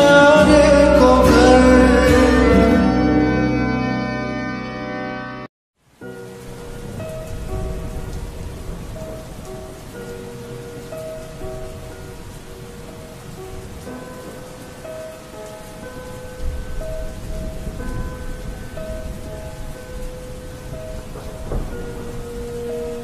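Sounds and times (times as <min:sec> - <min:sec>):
steady rain: 0:05.8 - 0:23.0
low thunder rumble: 0:06.6 - 0:10.6, 0:16.0 - 0:23.0.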